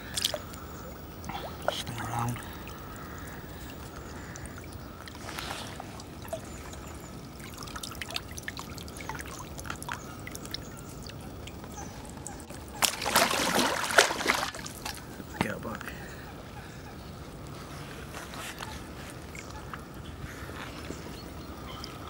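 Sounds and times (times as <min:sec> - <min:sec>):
fish splashing in water: 0:00.0 - 0:15.2
water trickling and dripping: 0:00.0 - 0:16.0, 0:18.7 - 0:22.0.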